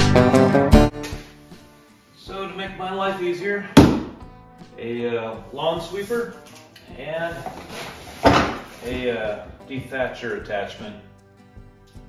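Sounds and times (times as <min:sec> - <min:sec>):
man talking: 0:08.8 - 0:11.0.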